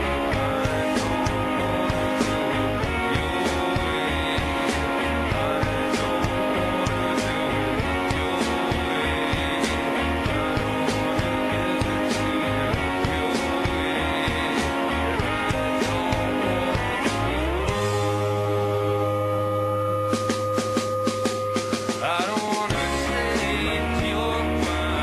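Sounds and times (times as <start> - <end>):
held low bass note: 0.0 - 21.9
bass guitar: 0.0 - 25.0
drums: 0.0 - 25.0
electric guitars: 0.0 - 25.0
sliding guitar note: 0.0 - 25.0.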